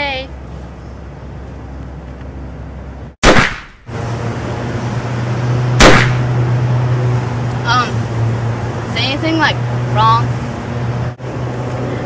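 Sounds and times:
loud gunshots: 0:03.2 - 0:03.9, 0:05.8 - 0:06.3.

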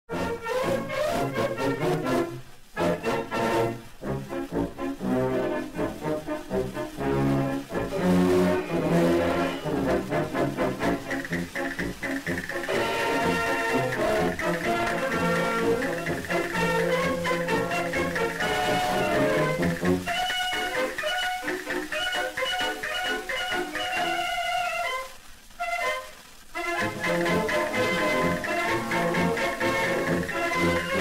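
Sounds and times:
brass band playing: 0:00.1 - 0:31.0.

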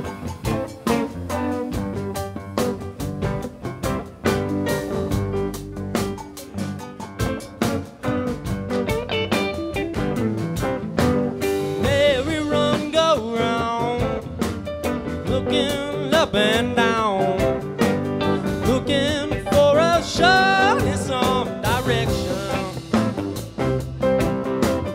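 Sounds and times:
bending guitar lead line: 0:00.0 - 0:24.9
rock band playing: 0:00.0 - 0:24.9.

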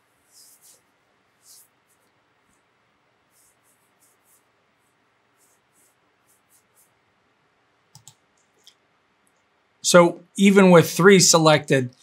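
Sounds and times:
computer mouse clicks: 0:07.9 - 0:09.5.

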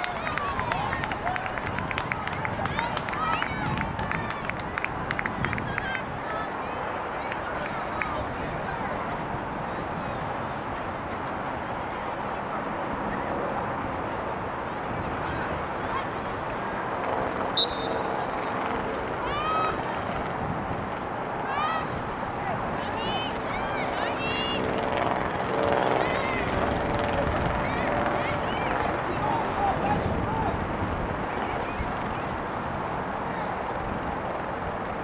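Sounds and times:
open-air noise: 0:00.0 - 0:35.0
distant calls and shouts: 0:17.5 - 0:18.4
referee's whistle blast: 0:17.6 - 0:18.2
short high chirps: 0:17.6 - 0:18.2.

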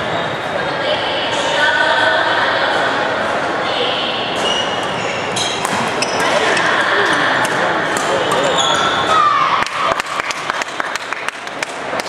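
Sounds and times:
shoes squeaking on floor: 0:04.4 - 0:06.8, 0:08.1 - 0:09.1
rackets striking shuttlecock: 0:05.4 - 0:08.9.

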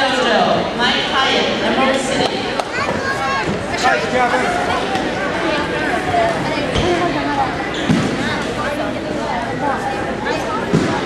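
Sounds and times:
indistinct talking in a hall: 0:00.0 - 0:11.0.

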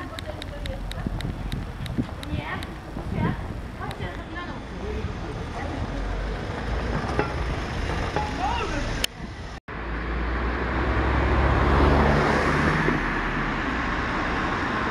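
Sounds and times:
car passing: 0:00.0 - 0:14.9
street traffic noise: 0:00.0 - 0:14.9.

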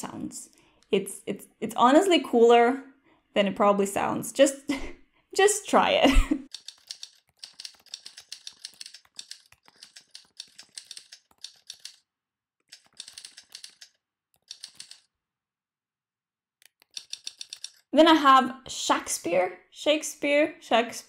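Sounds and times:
typewriter key clicks: 0:06.5 - 0:12.0, 0:12.7 - 0:15.1.

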